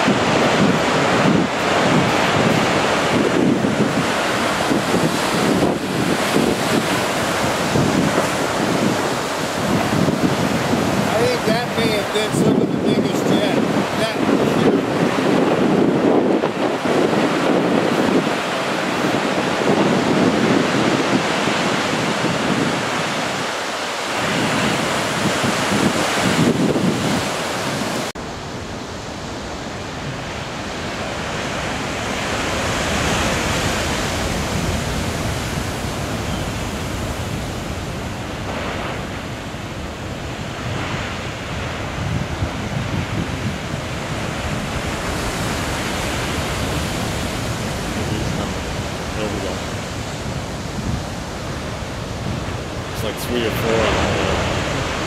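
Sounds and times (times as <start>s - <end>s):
storm surf breaking over rocks: 0.0s - 55.0s
wind buffeting microphone: 0.0s - 55.0s.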